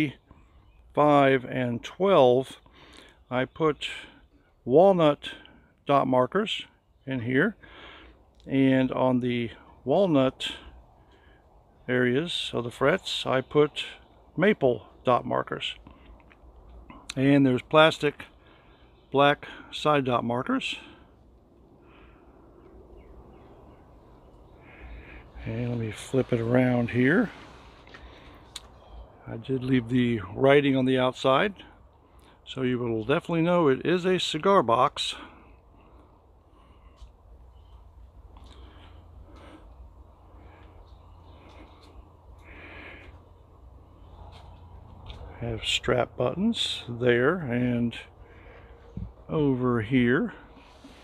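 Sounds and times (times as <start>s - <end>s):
steady low hum: 6.6s - 51.0s.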